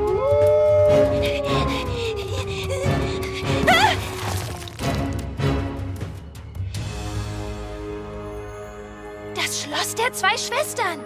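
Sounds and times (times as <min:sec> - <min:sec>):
wolf howling: 0:00.0 - 0:04.9
background music: 0:00.0 - 0:11.0.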